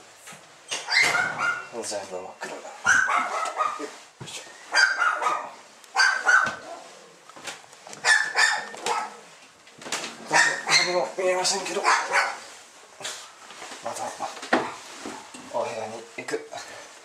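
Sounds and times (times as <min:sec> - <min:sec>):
animal high-pitched calls: 0:00.7 - 0:01.8, 0:10.3 - 0:11.0.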